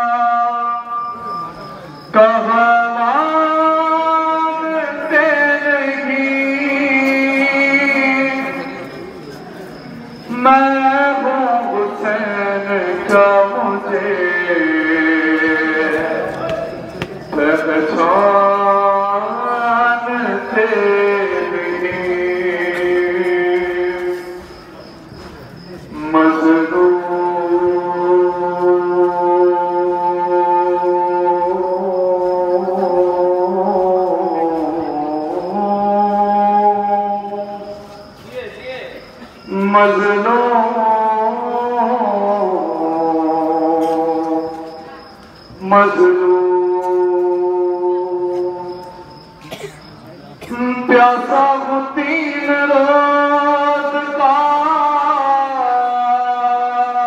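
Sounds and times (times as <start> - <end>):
man singing a lament: 0.0 - 9.1, 10.2 - 24.6, 25.9 - 38.3, 39.5 - 45.0, 45.6 - 49.4, 50.5 - 57.0.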